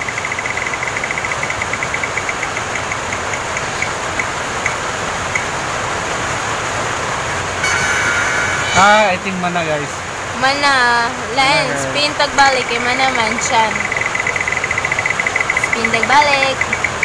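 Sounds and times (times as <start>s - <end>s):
app wheel ticking: 0.0s - 5.6s, 12.0s - 17.0s
background hiss: 0.0s - 17.0s
short chime: 7.6s - 8.9s.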